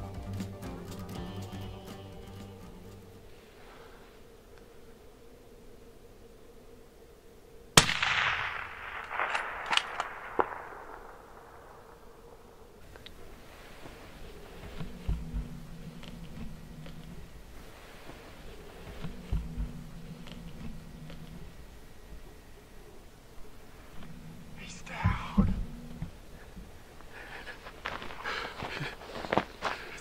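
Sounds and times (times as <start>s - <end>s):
loud rifle shot: 7.8s - 12.4s
sharp clicks: 9.0s - 10.7s.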